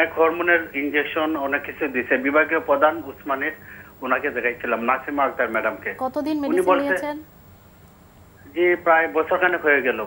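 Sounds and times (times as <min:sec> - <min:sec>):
person talking: 0:06.0 - 0:07.3.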